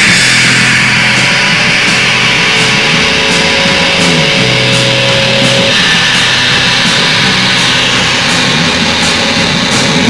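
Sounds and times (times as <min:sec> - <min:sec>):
cymbals crashing: 0:00.0 - 0:10.0
distorted electric guitar: 0:00.0 - 0:10.0.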